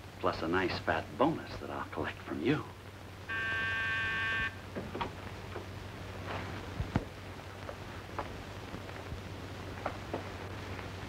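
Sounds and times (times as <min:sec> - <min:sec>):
electric door buzzer: 0:03.3 - 0:04.6.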